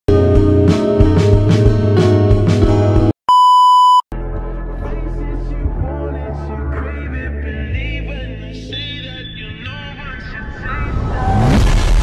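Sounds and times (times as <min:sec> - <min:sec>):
high test-tone beep: 0:03.3 - 0:04.0.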